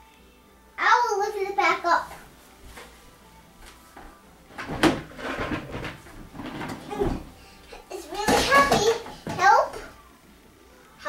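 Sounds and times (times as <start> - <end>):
plastic chair scuffling on wooden floor: 2.0 - 3.0, 3.6 - 10.0.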